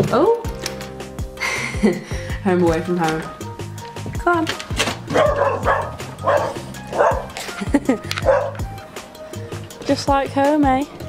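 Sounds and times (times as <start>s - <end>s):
background music with beat: 0.0s - 11.0s
dog barking: 5.1s - 7.4s, 8.2s - 8.7s.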